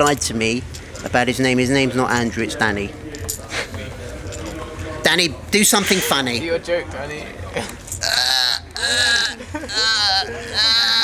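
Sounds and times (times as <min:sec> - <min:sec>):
person's high-pitched wavering cries: 0:08.1 - 0:11.0.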